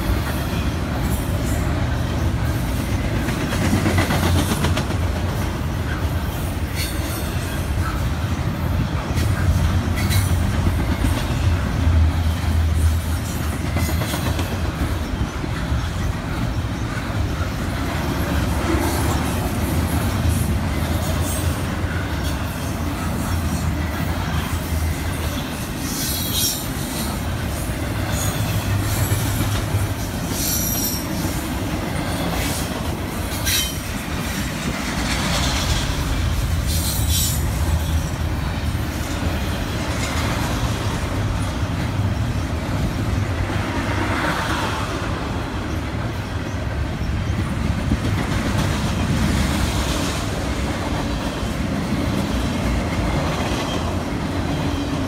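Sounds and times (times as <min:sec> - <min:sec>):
freight train wheels rumbling: 0:00.0 - 0:55.0.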